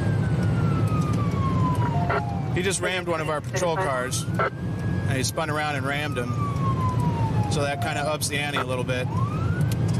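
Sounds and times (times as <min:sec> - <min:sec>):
car engine and road noise: 0:00.0 - 0:09.9
police siren wailing: 0:00.0 - 0:09.9.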